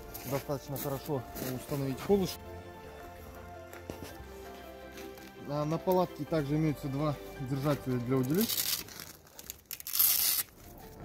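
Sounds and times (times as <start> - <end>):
small scuffs: 0.0 - 2.4, 3.2 - 6.0
velcro strap ripping open: 8.2 - 10.8.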